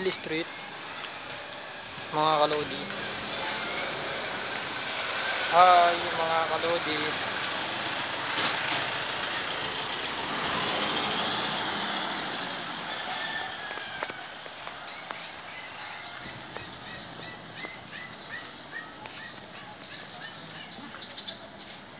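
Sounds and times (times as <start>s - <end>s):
vehicle passing: 0.0s - 21.9s
small bird chirping: 14.8s - 21.9s.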